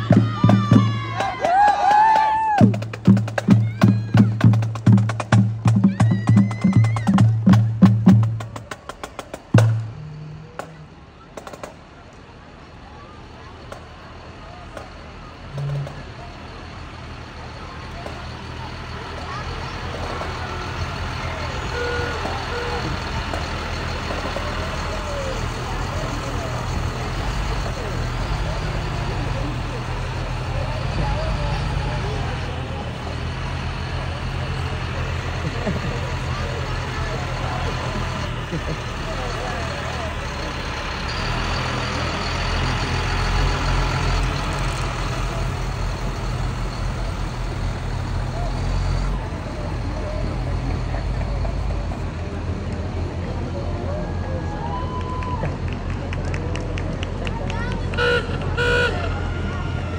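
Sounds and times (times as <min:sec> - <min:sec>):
people talking: 0:00.0 - 0:59.9
truck diesel engine running: 0:00.0 - 0:59.9.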